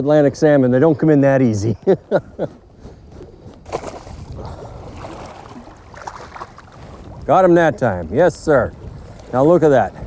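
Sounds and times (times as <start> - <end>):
water splashing and sloshing: 3.2 - 10.0.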